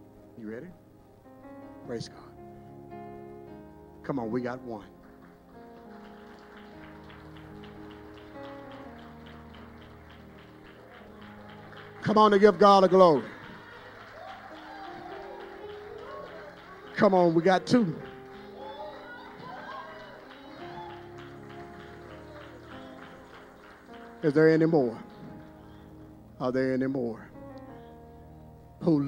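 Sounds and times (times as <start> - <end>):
soft instrumental church music: 0.0 - 29.0
soft keyboard chords: 0.0 - 29.0.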